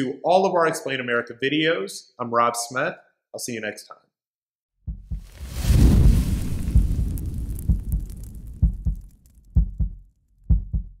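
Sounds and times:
low heartbeat-like thumps: 4.8s - 11.0s
deep boom: 4.9s - 11.0s.

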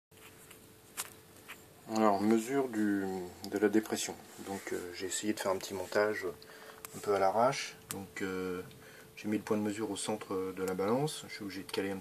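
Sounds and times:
faint steady hum: 0.2s - 12.0s.

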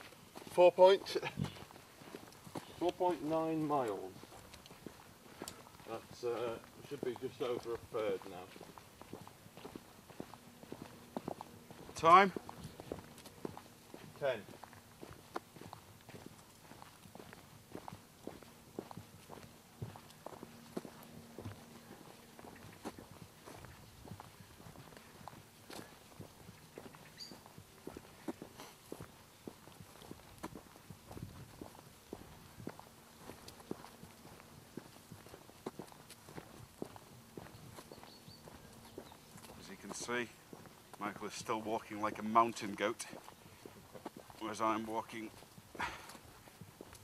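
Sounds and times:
footsteps on dirt path: 0.0s - 47.0s.

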